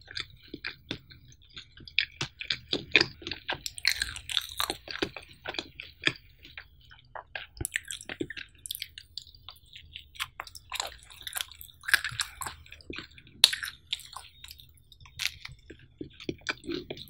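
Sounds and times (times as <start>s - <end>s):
wet chewing mouth clicks: 0.0s - 17.0s.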